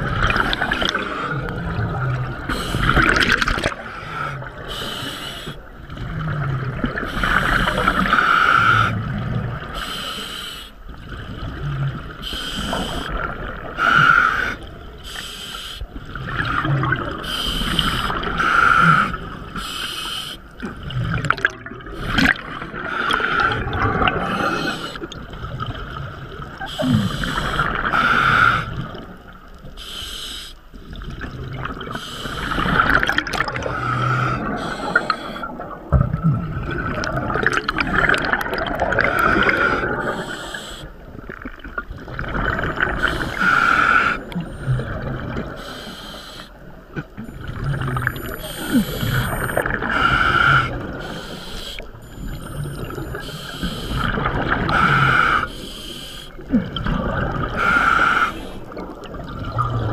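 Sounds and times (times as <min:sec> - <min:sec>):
exhaled bubbles rushing: 0:00.0 - 0:04.7, 0:05.6 - 0:08.2, 0:16.0 - 0:18.4, 0:20.6 - 0:28.0, 0:30.8 - 0:40.4, 0:41.0 - 0:45.6, 0:46.7 - 0:51.1, 0:51.8 - 0:55.5, 0:56.4 - 0:59.9
bubbling and gurgling: 0:00.0 - 0:10.1, 0:10.7 - 0:15.1, 0:15.8 - 0:19.8, 0:20.4 - 0:29.8, 0:30.6 - 0:45.8, 0:46.5 - 0:59.9.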